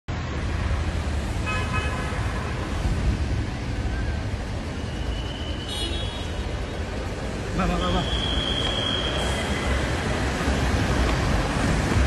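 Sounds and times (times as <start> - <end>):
traffic rumble: 0.1 - 12.0
car horn toot: 5.6 - 6.4.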